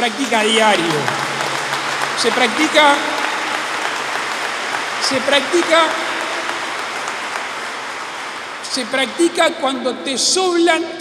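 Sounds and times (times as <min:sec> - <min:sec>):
audience applauding: 0:00.0 - 0:09.8.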